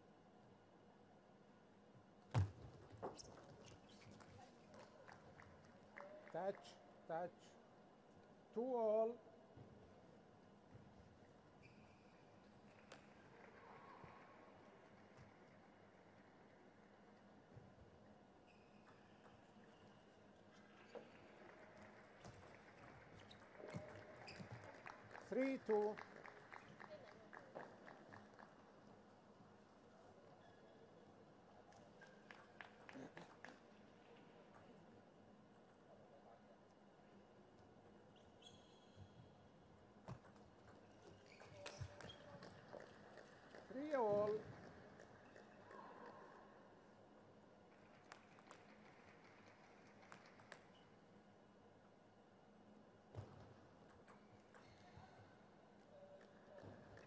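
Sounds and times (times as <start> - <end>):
shoe squeaking on floor: 3.0 - 4.6, 38.2 - 39.2, 41.0 - 42.8.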